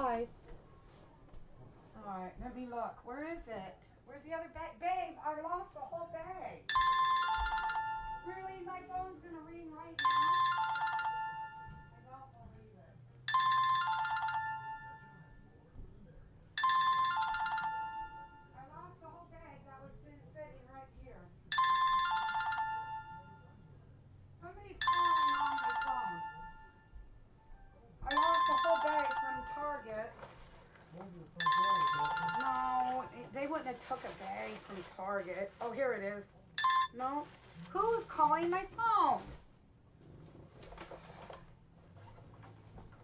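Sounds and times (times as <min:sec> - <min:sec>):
phone ringtone chime: 0:06.7 - 0:08.4, 0:10.0 - 0:12.0, 0:13.3 - 0:15.4, 0:16.6 - 0:18.6, 0:21.5 - 0:23.5, 0:24.8 - 0:26.9, 0:28.1 - 0:30.0, 0:31.4 - 0:33.3, 0:36.6 - 0:37.0.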